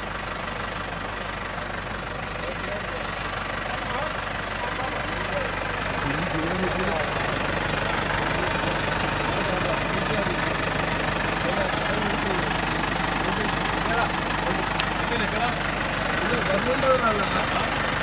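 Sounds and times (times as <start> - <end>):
faint voices: 0.7 - 18.0.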